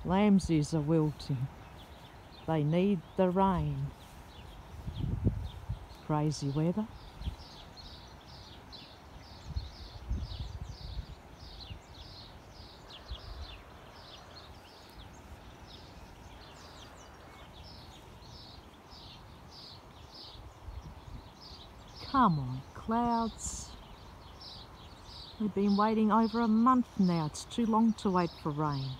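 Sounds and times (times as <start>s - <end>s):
wind rumble on microphone: 0.0s - 28.9s.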